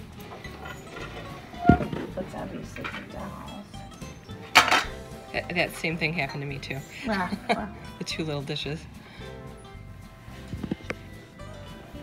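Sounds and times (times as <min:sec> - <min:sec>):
bowl and plate clattering: 0:00.2 - 0:05.1.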